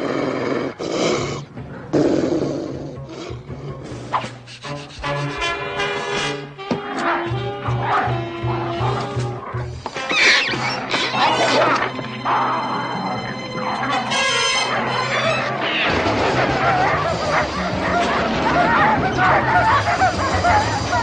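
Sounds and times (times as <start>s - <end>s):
orchestral cartoon music: 1.2s - 21.0s
dogs barking: 6.8s - 21.0s.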